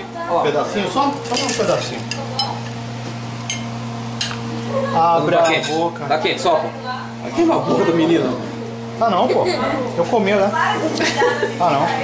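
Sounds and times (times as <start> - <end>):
fork and knife clinking on plate: 1.3 - 2.6.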